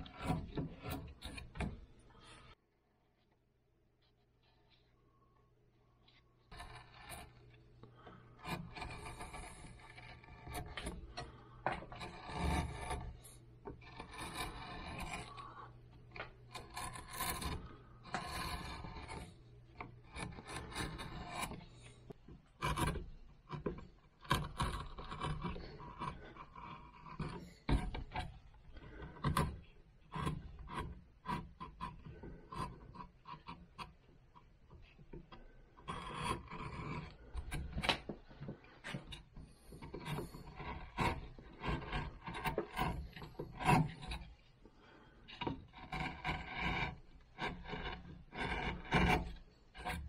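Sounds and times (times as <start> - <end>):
gouge scraping and cutting bark: 0.0 - 2.5, 6.5 - 34.0, 34.7 - 50.0.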